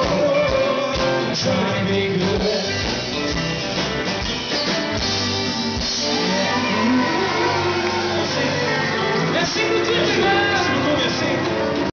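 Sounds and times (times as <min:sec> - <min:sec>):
live country band playing: 0:00.0 - 0:11.9.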